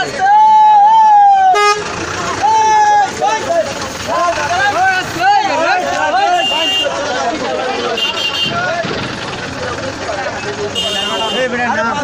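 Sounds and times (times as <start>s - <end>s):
vehicle horns blaring: 1.5s - 2.0s, 6.0s - 7.1s, 7.7s - 9.2s, 10.4s - 11.8s.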